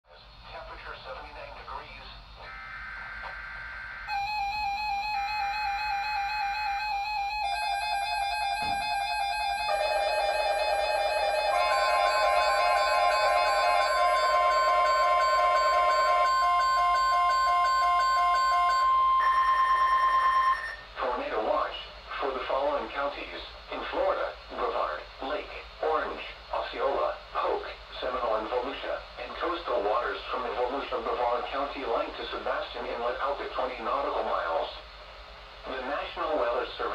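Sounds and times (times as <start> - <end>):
broadcast voice on radio: 0.4 - 2.2
electronic synth music: 4.1 - 19.3
long steady tone: 4.1 - 20.9.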